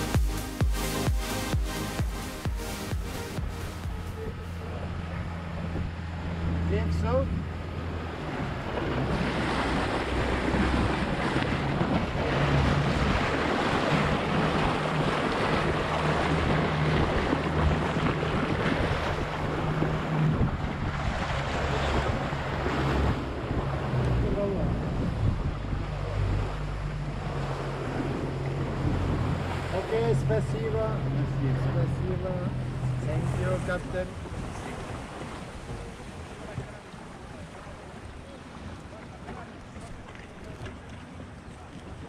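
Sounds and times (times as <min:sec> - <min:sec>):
motorboat engine running: 0:00.0 - 0:42.0
water rushing along hull: 0:00.0 - 0:42.0
wind buffeting microphone: 0:03.4 - 0:29.8, 0:32.6 - 0:42.0.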